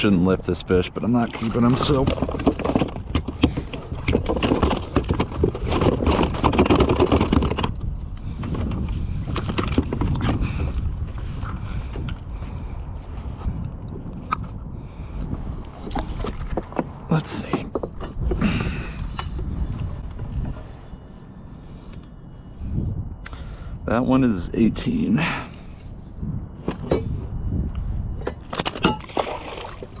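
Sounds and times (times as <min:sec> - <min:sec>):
wind on microphone: 0:00.0 - 0:30.0.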